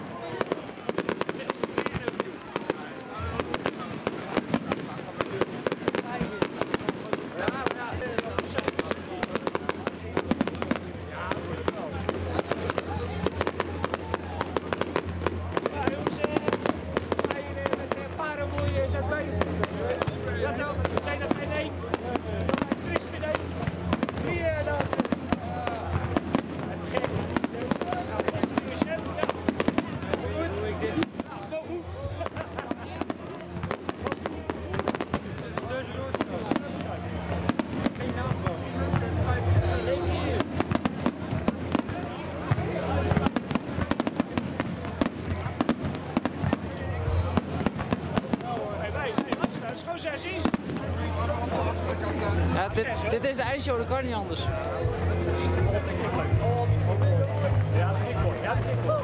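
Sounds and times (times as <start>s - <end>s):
crowd voices: 0.0s - 59.0s
fireworks bursting and crackling: 0.0s - 59.0s
music: 5.4s - 59.0s.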